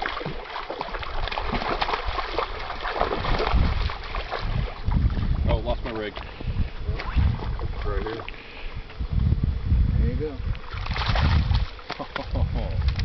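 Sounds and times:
water splashing: 0.0s - 8.6s, 10.6s - 13.0s
wind gusting on microphone: 1.5s - 13.0s.

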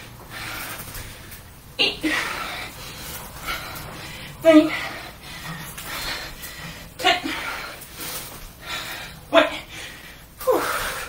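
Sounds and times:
person breathing hard: 0.2s - 11.0s.

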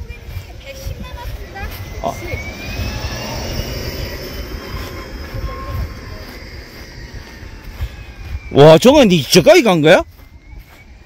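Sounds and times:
distant engine drone: 0.0s - 11.0s
wind rumble on microphone: 0.0s - 11.0s.

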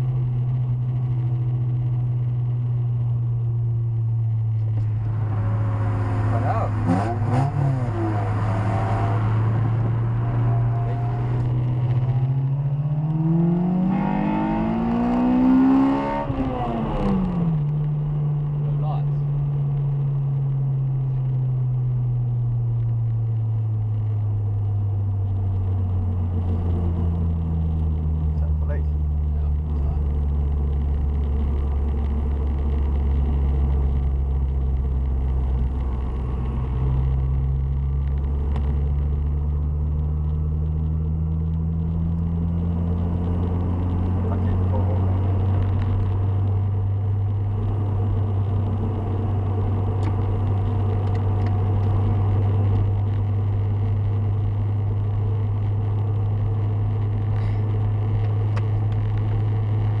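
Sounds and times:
car engine from inside cabin: 0.0s - 60.0s
tyre and road noise: 0.0s - 60.0s.

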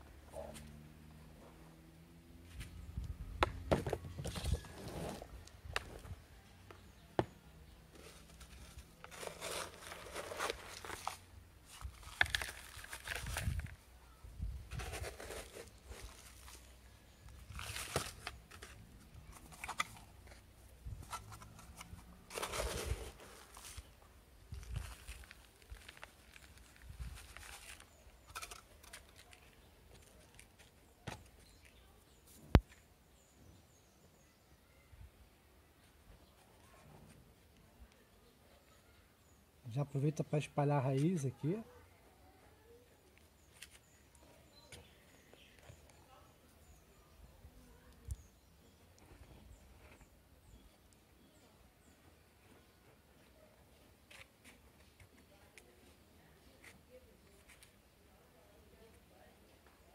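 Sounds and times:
gritty soil pouring rustles: 7.9s - 13.8s, 22.2s - 23.9s, 24.5s - 29.6s
plastic bottle crinkling: 8.0s - 13.8s, 17.4s - 20.4s.

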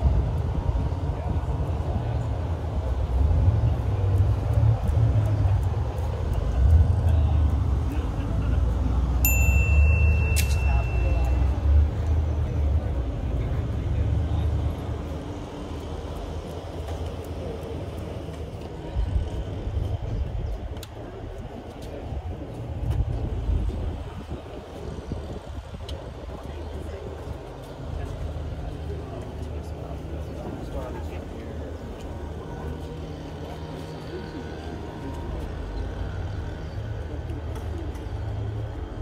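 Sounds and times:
wind rumble on microphone: 0.0s - 9.2s, 11.1s - 32.4s
faint distant voices: 0.0s - 39.0s.

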